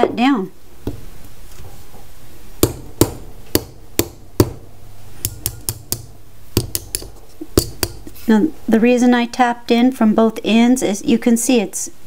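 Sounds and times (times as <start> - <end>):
hammer tapping metal: 2.6 - 8.1.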